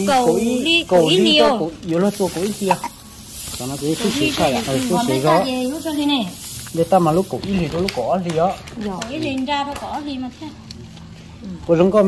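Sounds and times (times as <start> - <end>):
rice rustling in a sack: 2.1 - 7.8.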